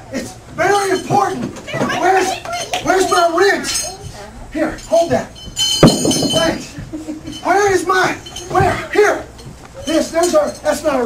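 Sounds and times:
light clinking: 4.8 - 11.0.

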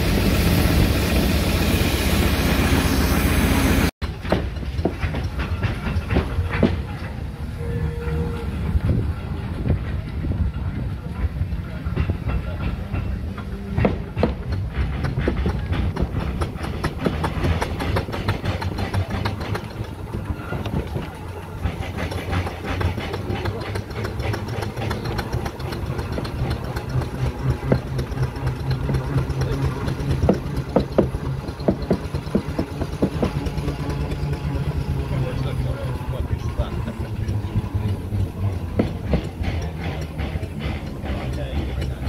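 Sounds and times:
steam wagon exhaust beats and clatter: 0.0 - 42.0.

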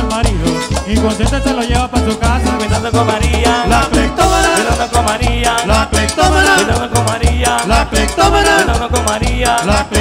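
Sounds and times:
live band playing cumbia dance tune: 0.0 - 10.0.

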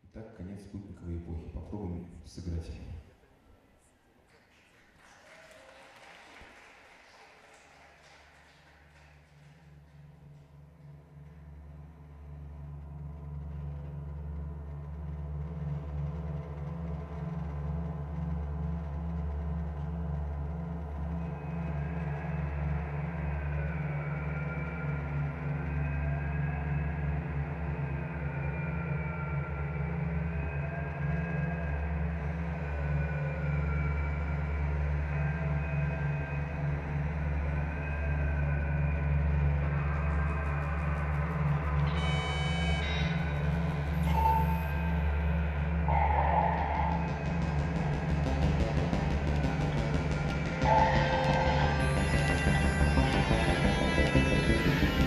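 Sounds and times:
low synthesizer drone: 9.2 - 55.0
wavering synthesizer tones: 21.2 - 55.0
bright high synth tones: 47.8 - 55.0.

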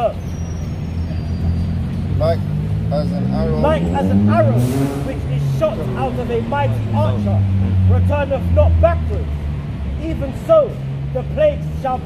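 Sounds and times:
vehicle engine rumbling: 0.0 - 12.0.

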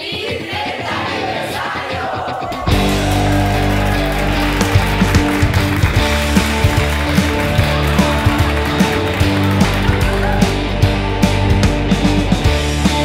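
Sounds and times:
rock music: 0.7 - 13.0.

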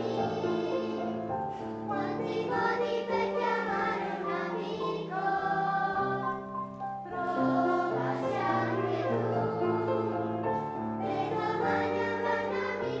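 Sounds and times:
children's choir singing: 0.0 - 13.0
piano accompaniment: 0.0 - 13.0.

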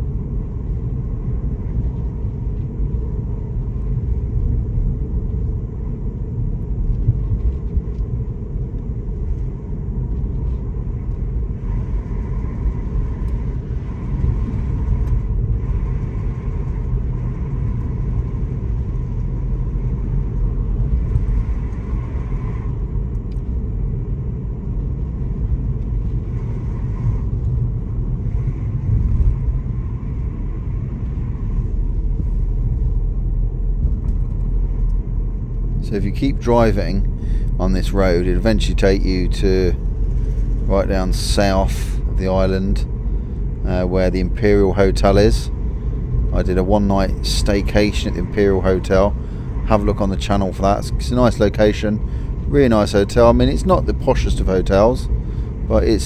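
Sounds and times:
car interior road rumble: 0.0 - 56.0.

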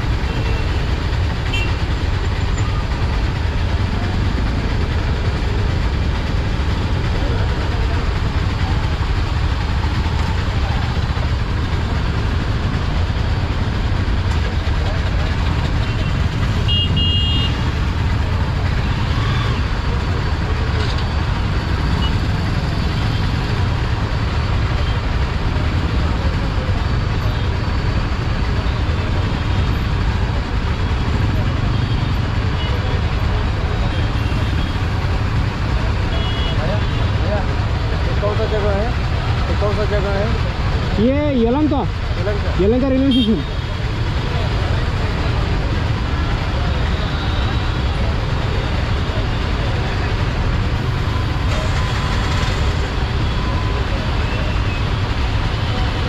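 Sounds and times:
idling engines rumble: 0.0 - 56.0.

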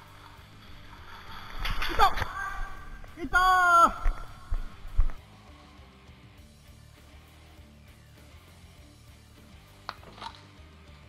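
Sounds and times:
person calling out: 1.8 - 4.2.

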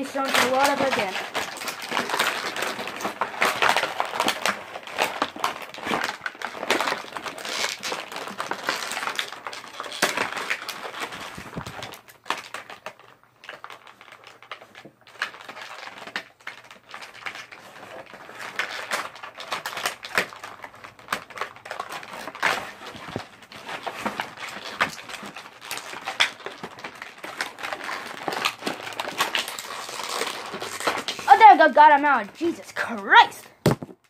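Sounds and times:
packaging crinkling and rustling: 0.0 - 34.0.

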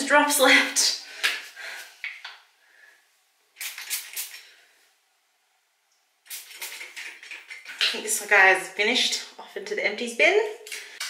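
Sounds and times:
pump-spray bottle clicks and spurts: 3.6 - 4.4.

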